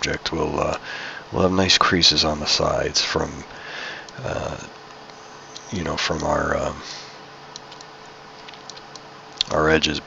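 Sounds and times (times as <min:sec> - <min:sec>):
faint low hum: 0:00.0 - 0:10.0
microphone hiss: 0:00.0 - 0:10.0
computer mouse clicks: 0:07.5 - 0:09.5.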